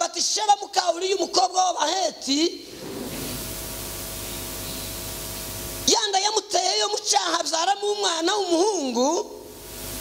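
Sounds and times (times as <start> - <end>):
faint steady hum: 0.0 - 10.0
electronic static hiss: 2.6 - 6.0, 9.2 - 10.0.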